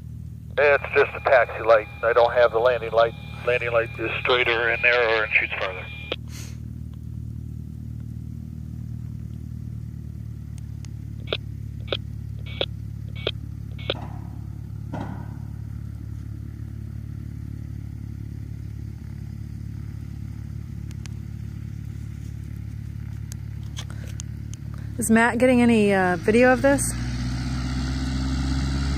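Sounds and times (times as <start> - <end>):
engine idling: 0.0 - 26.8.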